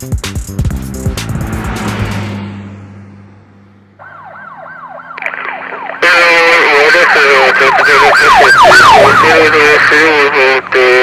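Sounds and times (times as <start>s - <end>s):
police siren wailing: 3.9s - 11.0s.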